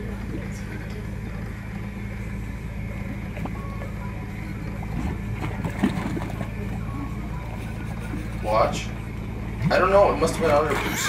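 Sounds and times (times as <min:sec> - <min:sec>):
low machinery engine rumble: 0:00.0 - 0:11.0.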